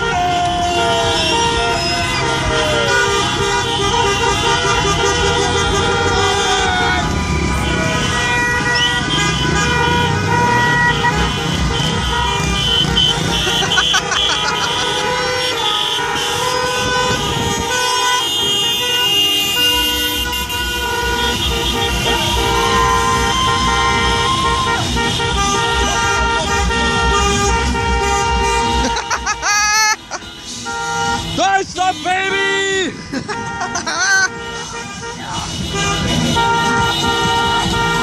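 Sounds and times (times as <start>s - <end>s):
car engines rumbling: 0.0s - 38.0s
car horns honking: 0.0s - 38.0s.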